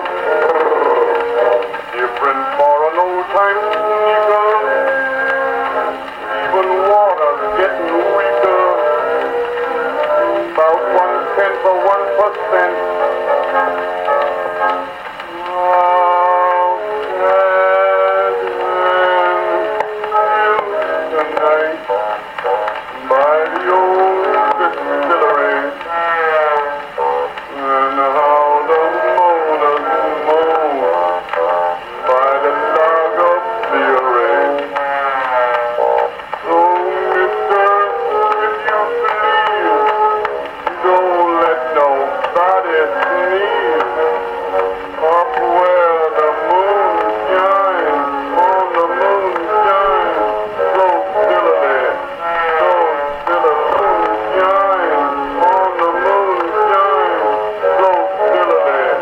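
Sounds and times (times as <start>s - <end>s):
song on a phonograph: 0.0s - 59.0s.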